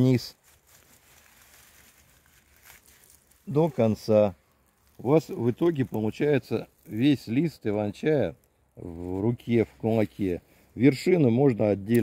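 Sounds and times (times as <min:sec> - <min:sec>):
leaves rustling: 0:00.0 - 0:12.0.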